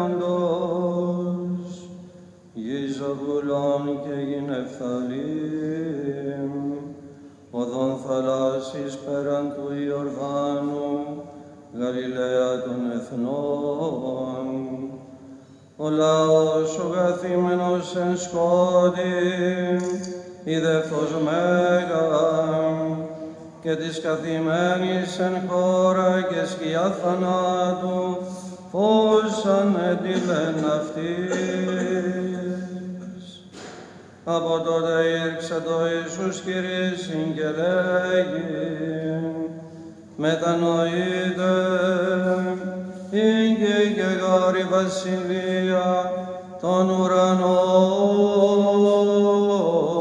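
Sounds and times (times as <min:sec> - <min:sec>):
low held vocal drone: 0:00.0 - 0:50.0
male voices chanting: 0:23.6 - 0:33.7.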